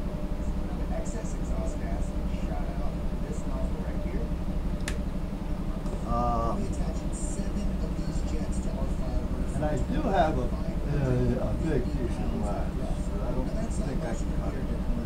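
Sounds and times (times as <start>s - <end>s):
steady low hum: 0.0s - 15.0s
man murmuring: 6.0s - 15.0s.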